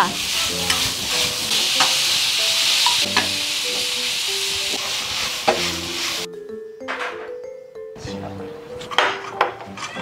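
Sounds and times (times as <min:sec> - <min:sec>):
food sizzling in a wok: 0:00.0 - 0:06.3.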